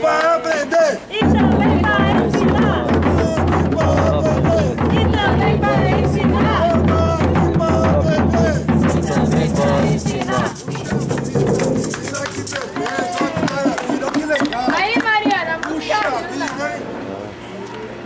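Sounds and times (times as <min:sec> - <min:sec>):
several voices: 0:00.0 - 0:18.0
large drums beaten with sticks: 0:01.2 - 0:12.5
shaken rattles: 0:08.8 - 0:15.1.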